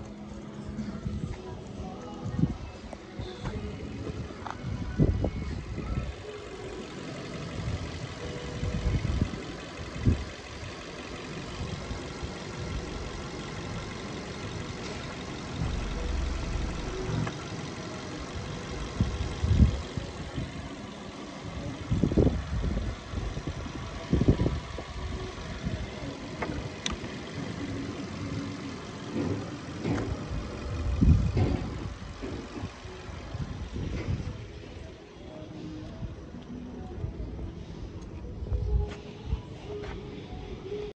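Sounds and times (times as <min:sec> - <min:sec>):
car engine idling: 0:00.0 - 0:40.9
wind rumble on microphone: 0:02.2 - 0:06.3, 0:07.6 - 0:10.4, 0:18.8 - 0:20.7, 0:21.6 - 0:26.9, 0:29.8 - 0:35.0.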